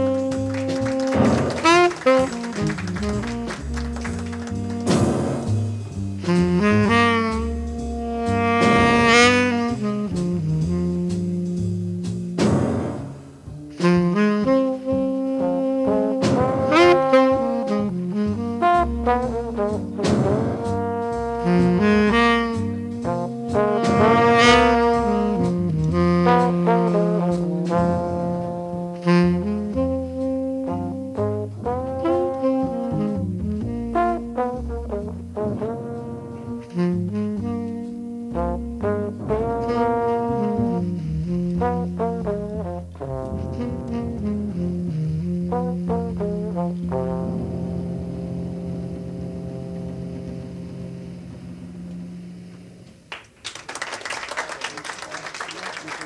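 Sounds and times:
live jazz band playing: 0:00.0 - 0:53.1
audience applause: 0:00.2 - 0:05.0, 0:53.1 - 0:56.0.

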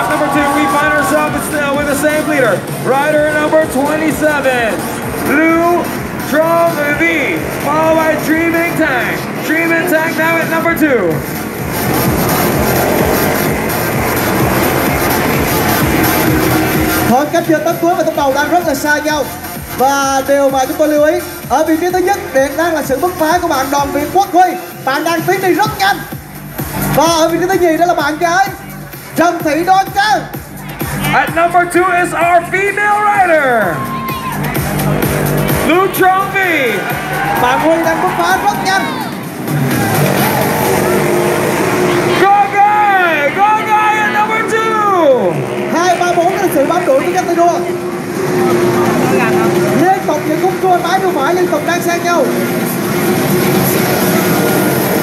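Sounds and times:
voices: 0:00.0 - 0:26.0, 0:26.9 - 0:55.0
electronic dance music: 0:00.0 - 0:55.0
racing motorbike engines passing: 0:00.0 - 0:55.0.

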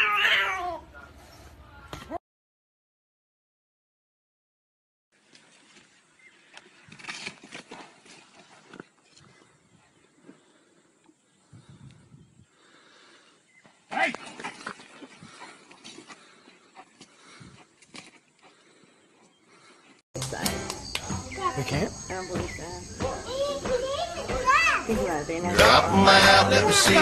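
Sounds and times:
rustling in dry bush: 0:05.2 - 0:20.0
low voices: 0:20.2 - 0:27.0.

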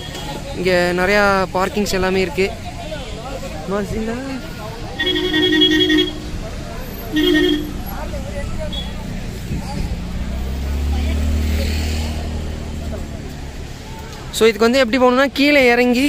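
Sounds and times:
vehicle engine rumble: 0:00.0 - 0:16.0
vehicle horn blasts: 0:05.0 - 0:06.3, 0:07.0 - 0:07.9.

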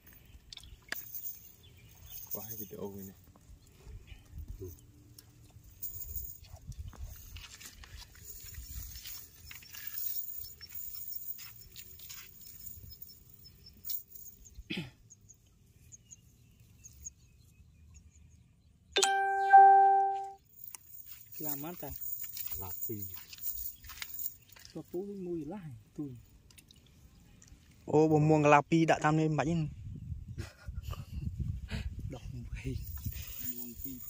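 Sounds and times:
electronic chime: 0:19.0 - 0:20.4
rustling and clicking of wet net: 0:26.4 - 0:27.9.

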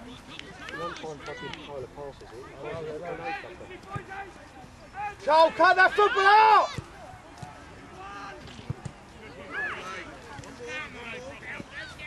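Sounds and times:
people shouting: 0:05.0 - 0:06.8.

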